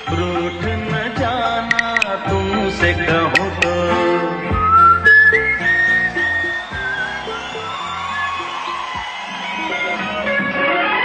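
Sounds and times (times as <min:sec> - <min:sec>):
whistled melody: 0:00.0 - 0:02.3, 0:03.1 - 0:10.3
song backing music: 0:00.0 - 0:11.0.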